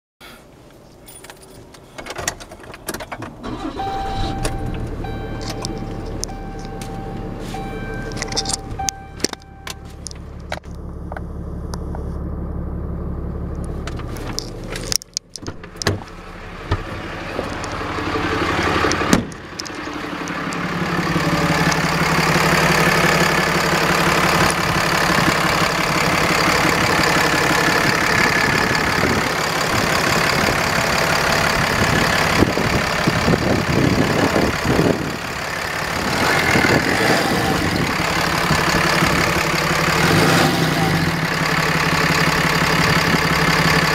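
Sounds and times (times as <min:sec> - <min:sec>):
diesel engine idling: 0:03.4 - 0:43.9
keys jangling: 0:08.0 - 0:10.2.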